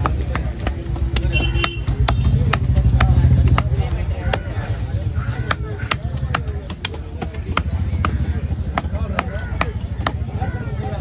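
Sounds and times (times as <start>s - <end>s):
knife chopping fish on wooden block: 0.0s - 10.4s.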